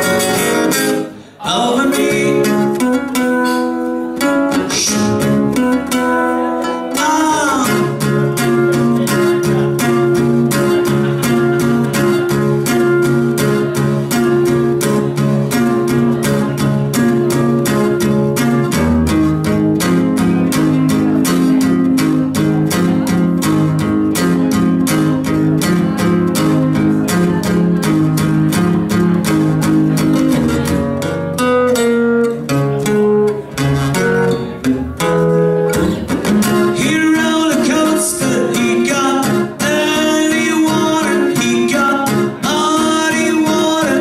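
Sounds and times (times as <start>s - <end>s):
acoustic guitar strumming: 0.0s - 44.0s
guitar picked notes: 0.0s - 44.0s.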